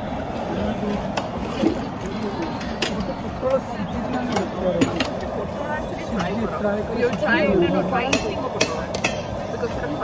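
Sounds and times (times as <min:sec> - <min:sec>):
people talking: 0:00.4 - 0:10.0.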